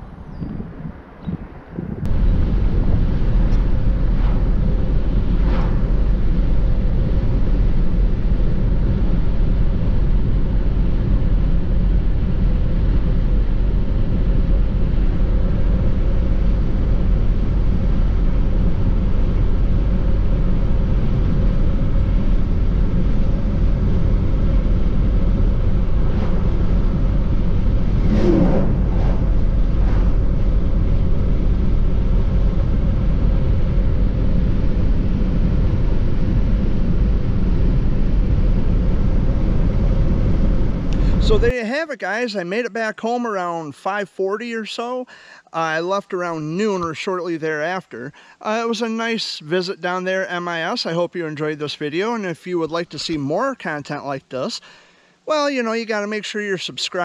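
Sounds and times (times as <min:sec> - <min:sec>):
car road and tyre noise: 0:00.0 - 0:17.2, 0:22.2 - 0:33.8.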